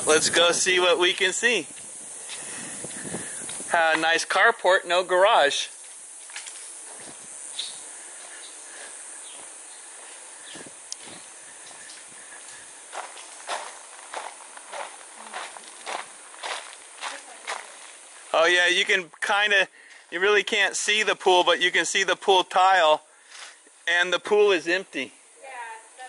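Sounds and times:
steady high hiss: 0.0 - 26.0
footsteps on concrete: 5.8 - 18.0.

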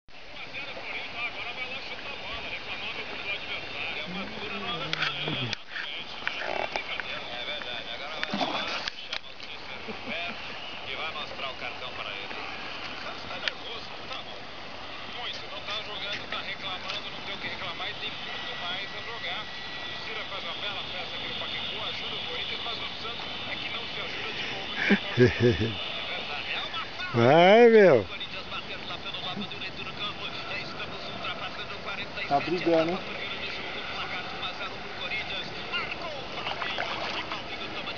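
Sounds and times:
faint voices: 0.1 - 37.9.

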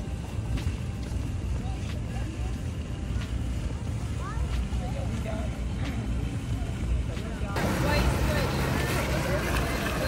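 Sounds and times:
faint distant voices: 0.0 - 10.0
fountain splashing into pool: 0.0 - 10.0
low outdoor rumble: 0.0 - 10.0.

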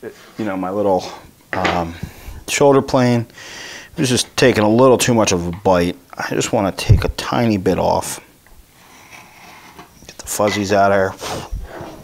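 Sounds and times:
hand file scraping wood: 8.8 - 12.0.

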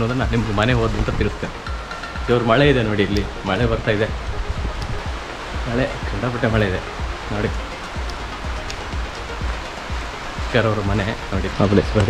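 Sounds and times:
man talking: 0.0 - 7.7, 10.4 - 12.0
background hiss: 0.0 - 12.0.

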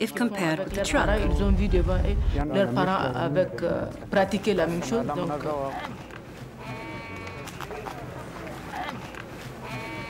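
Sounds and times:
murmur of voices: 4.0 - 10.0
livestock crying: 9.6 - 10.0.

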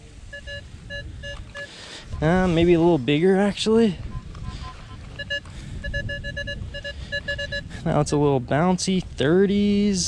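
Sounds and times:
metal detector beeps: 0.2 - 2.7, 4.0 - 7.7.

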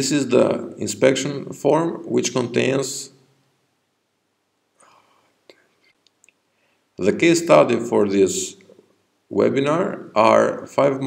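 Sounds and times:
faint soft noise: 0.0 - 11.0.

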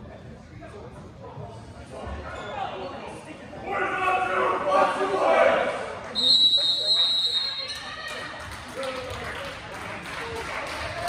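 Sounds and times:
voices in a gym: 0.0 - 11.0
referee's whistle blast: 6.2 - 7.6.

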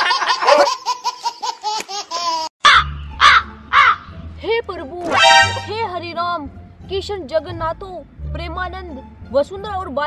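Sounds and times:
crow cawing: 2.7 - 4.1.

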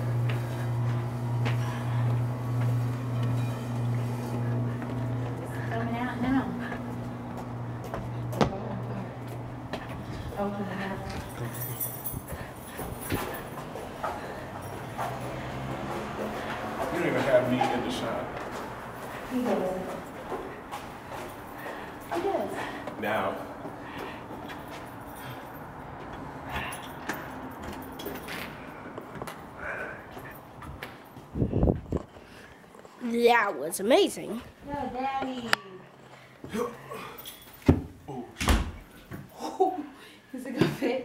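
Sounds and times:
footsteps along a hallway: 0.0 - 38.1, 38.7 - 39.4.

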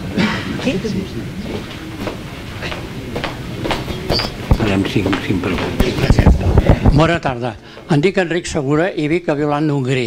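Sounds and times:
microphone handling noise: 3.6 - 7.2.

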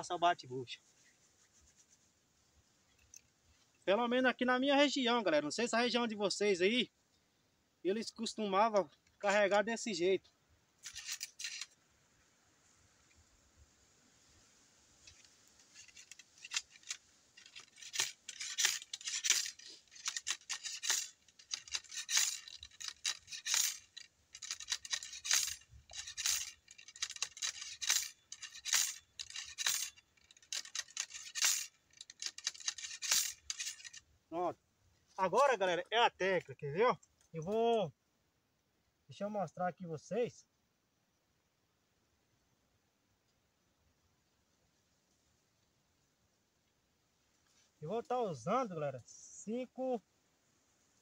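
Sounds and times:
ramrod scraping knocks in barrel: 15.0 - 34.0.

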